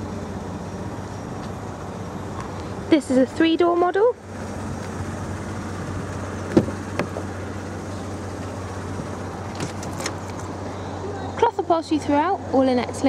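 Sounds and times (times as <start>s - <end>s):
steady low hum: 0.0s - 13.0s
car door clicks opening: 6.5s - 7.2s.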